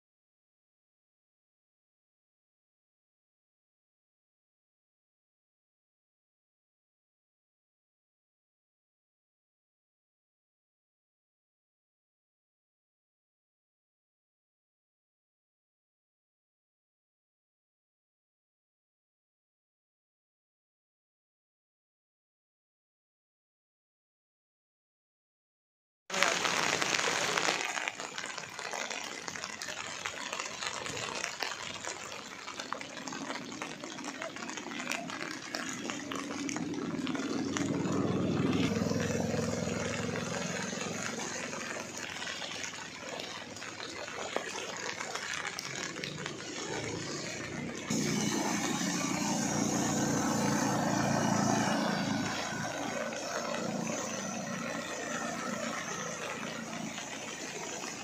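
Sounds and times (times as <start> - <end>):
rain on flooded road: 26.1 - 58.0
vehicles driving through water: 26.1 - 58.0.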